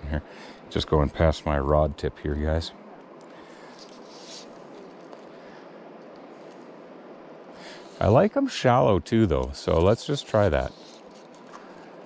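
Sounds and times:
faint higher hiss: 0.0 - 12.0
outdoor ambient hiss: 0.0 - 12.0.

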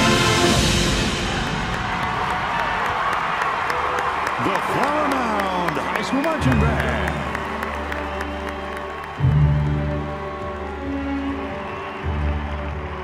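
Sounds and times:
crowd applauding: 0.0 - 13.0.

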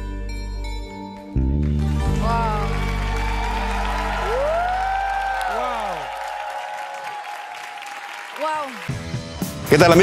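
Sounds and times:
audience applauding: 1.6 - 9.5.

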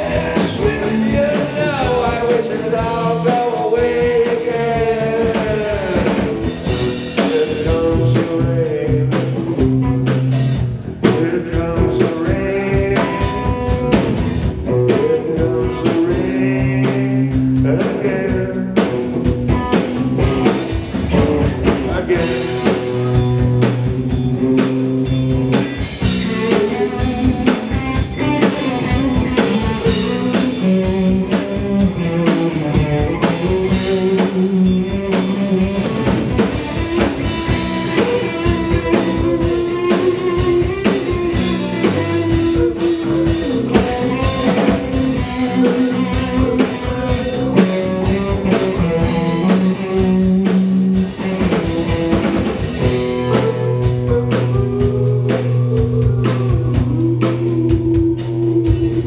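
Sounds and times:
drum kit: 0.0 - 59.0
electric bass: 0.0 - 59.0
electric guitars: 0.0 - 59.0.

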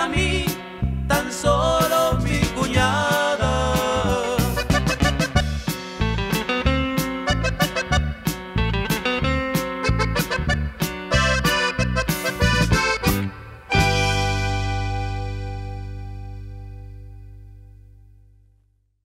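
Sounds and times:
rhythmic band: 0.0 - 16.8
accordion: 1.3 - 17.2.

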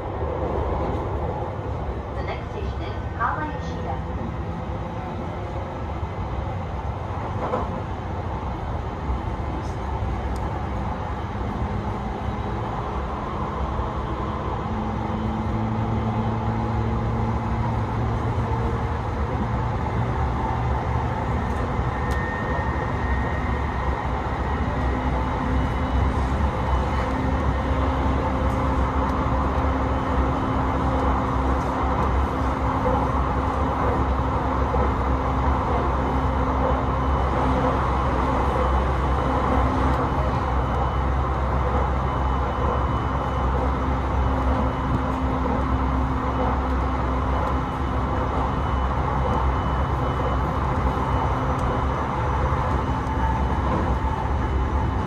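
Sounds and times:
electric train hum: 0.0 - 55.0
train wheels rumbling on rails: 0.0 - 55.0.

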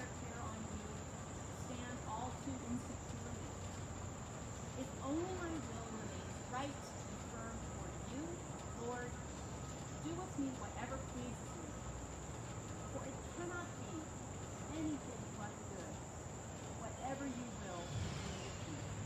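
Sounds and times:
woman reading aloud faintly: 0.0 - 4.0, 4.7 - 12.0, 12.8 - 19.0
crickets chirring: 0.0 - 19.0.

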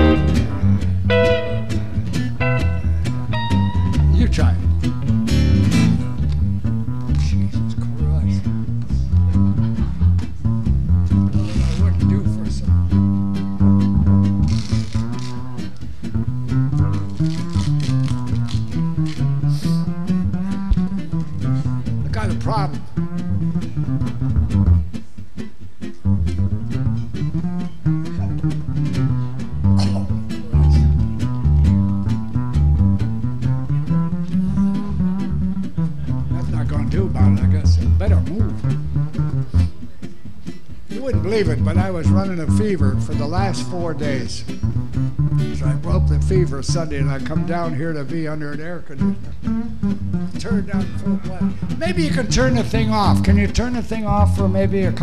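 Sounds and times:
electric guitars: 0.0 - 55.0
plucked double bass line: 0.0 - 55.0.

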